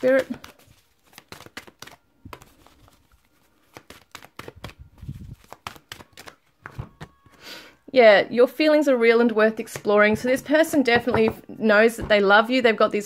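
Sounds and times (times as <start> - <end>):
cards being shuffled: 0.0 - 7.2.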